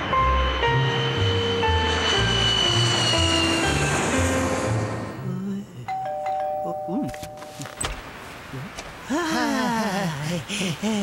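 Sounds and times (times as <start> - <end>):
two-note doorbell chime: 5.9 - 7.7.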